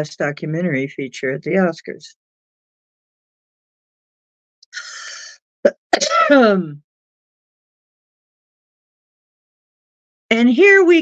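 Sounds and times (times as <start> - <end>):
person breathing through mouth: 4.7 - 5.4.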